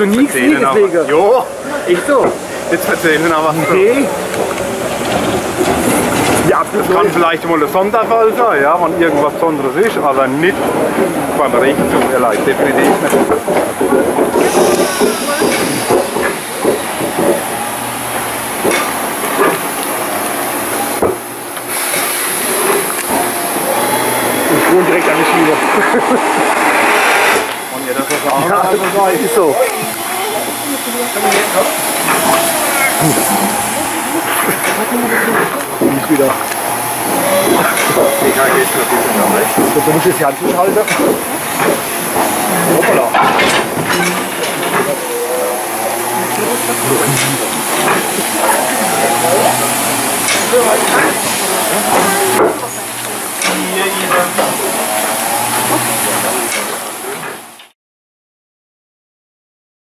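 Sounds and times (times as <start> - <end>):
people talking: 0.0 - 4.5, 6.3 - 17.3, 22.7 - 26.6, 27.6 - 57.5
faint voices: 0.0 - 21.6, 22.2 - 26.8, 27.4 - 57.7
steam hissing from locomotive: 9.1 - 57.6
hiss of escaping steam: 14.3 - 17.5, 21.6 - 35.5.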